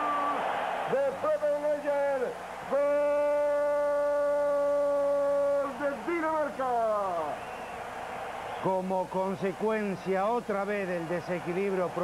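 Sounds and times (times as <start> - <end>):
man shouting goal celebration: 0.0 - 7.3.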